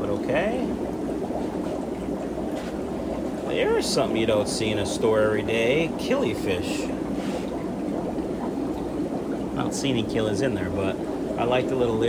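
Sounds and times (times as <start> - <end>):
water rushing and splashing: 0.0 - 12.0.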